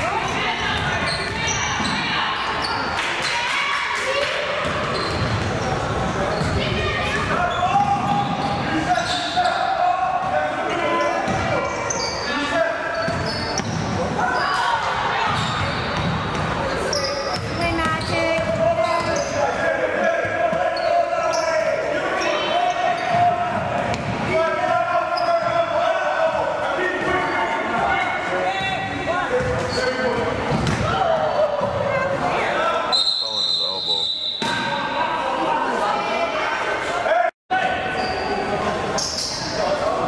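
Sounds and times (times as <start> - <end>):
indistinct voices echoing: 0.0 - 40.0.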